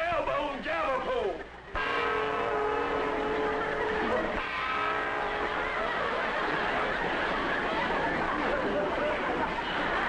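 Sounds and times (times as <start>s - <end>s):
held chord of steady tones: 1.8s - 8.2s.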